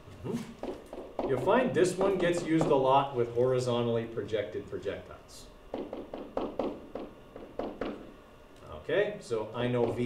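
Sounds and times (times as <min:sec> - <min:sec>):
stylus tapping on screen: 0:00.6 - 0:02.8, 0:05.7 - 0:08.1.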